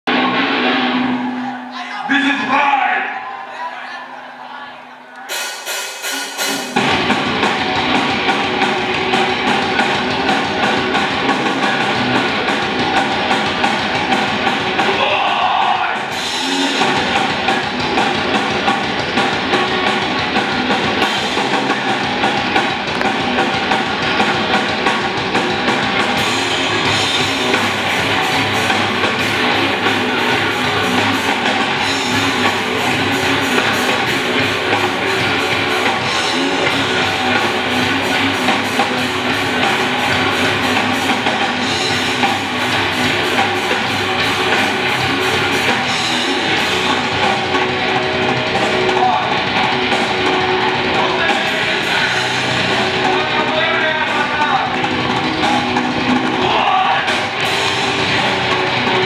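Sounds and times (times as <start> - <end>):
heavy rock band playing: 0.1 - 4.2, 5.3 - 59.0.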